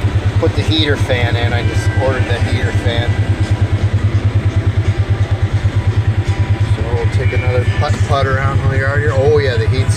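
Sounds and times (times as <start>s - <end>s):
vehicle engine idling: 0.0s - 9.9s.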